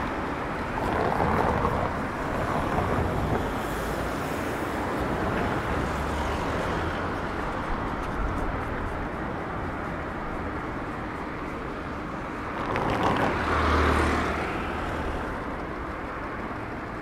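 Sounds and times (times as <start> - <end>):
city street traffic: 0.0 - 17.0.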